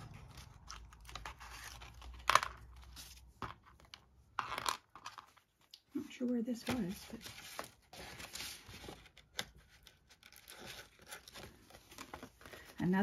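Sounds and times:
paper pages rustling: 0:06.5 - 0:13.0.

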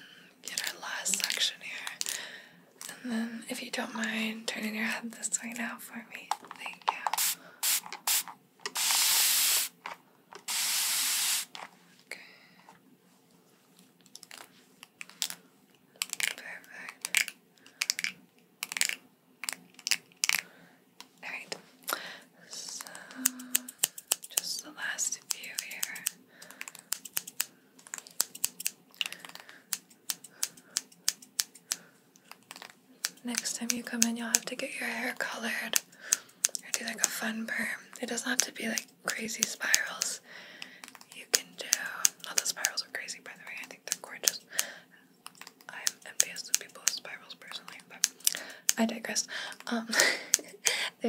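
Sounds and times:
spray bottle hissing: 0:07.1 - 0:09.8, 0:10.4 - 0:11.6
scissors snipping hair: 0:23.1 - 0:24.6, 0:25.2 - 0:37.2, 0:38.0 - 0:40.2, 0:40.8 - 0:42.8, 0:43.6 - 0:48.9, 0:49.9 - 0:50.6.

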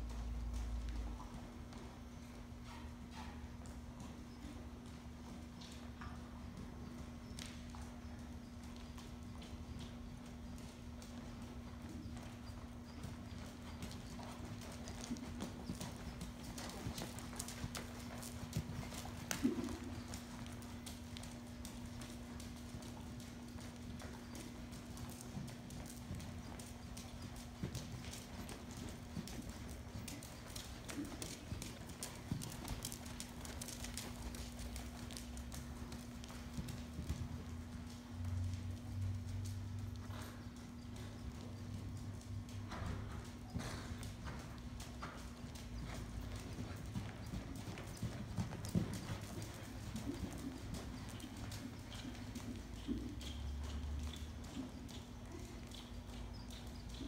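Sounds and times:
horse hooves on sand: 0:00.0 - 0:57.0.

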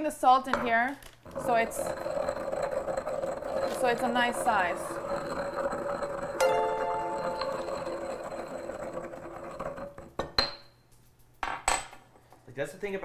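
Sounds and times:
pestle crushing salt in mortar: 0:01.2 - 0:10.4
ringing chime: 0:06.4 - 0:08.0.

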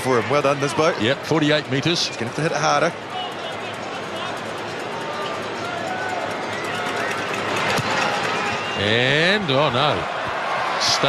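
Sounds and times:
stadium crowd murmuring: 0:00.0 - 0:11.0.

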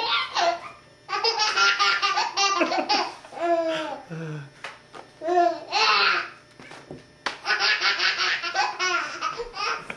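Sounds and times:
baby belly-laughing: 0:00.0 - 0:04.0, 0:07.4 - 0:09.9.

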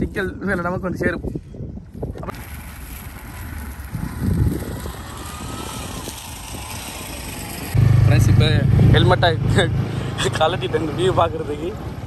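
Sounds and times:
auto-rickshaw engine driving past: 0:02.4 - 0:12.0.

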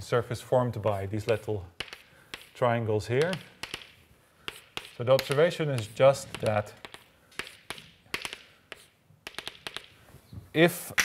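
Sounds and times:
chalk tapping on blackboard: 0:00.9 - 0:10.0.

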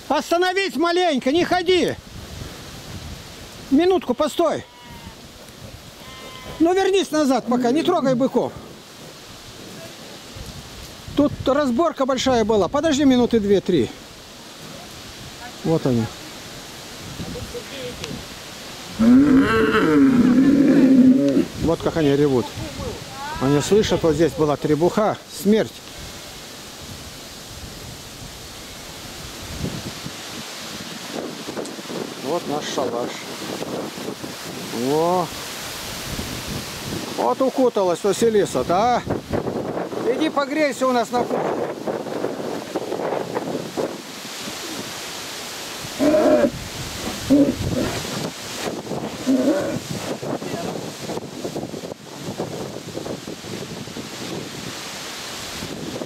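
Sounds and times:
wind on microphone: 0:01.7 - 0:03.7, 0:15.0 - 0:24.4, 0:25.9 - 0:37.2, 0:38.6 - 0:45.2, 0:45.8 - 0:56.0
bull bellowing: 0:06.0 - 0:06.7, 0:19.0 - 0:21.6, 0:46.0 - 0:48.1, 0:49.1 - 0:49.9.

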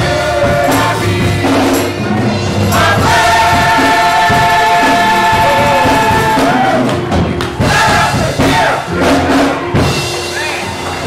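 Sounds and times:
church choir holding chord: 0:02.7 - 0:06.9
voices calling out and cheering: 0:02.8 - 0:11.0.

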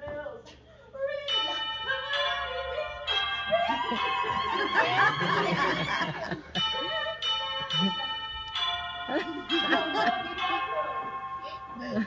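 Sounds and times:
bell chime notes: 0:01.3 - 0:12.0.

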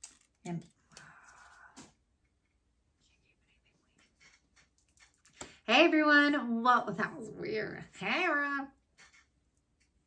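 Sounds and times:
breathy whisper: 0:02.9 - 0:05.4.

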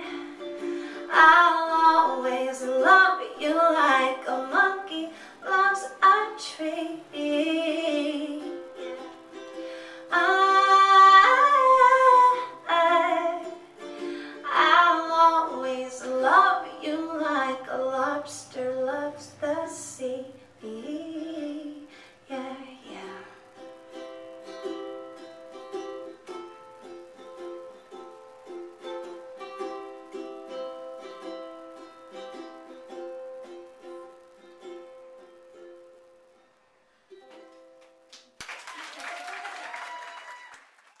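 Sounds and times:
plucked string instrument: 0:00.0 - 0:38.3
audience applause: 0:38.1 - 0:41.0.

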